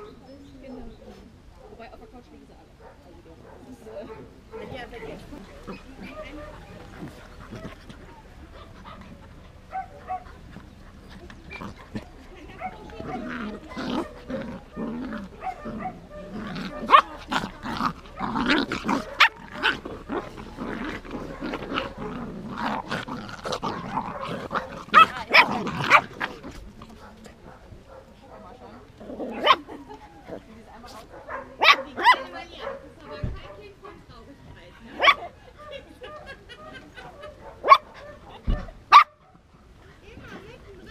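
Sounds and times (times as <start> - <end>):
puppies growling: 3.6 - 34.1
puppies yapping: 4.6 - 27.2, 27.9 - 30.5, 35.0 - 39.4.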